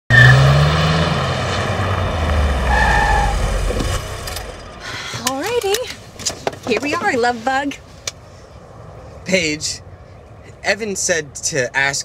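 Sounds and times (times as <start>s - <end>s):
car engine slowing to a stop: 0.2s - 5.4s.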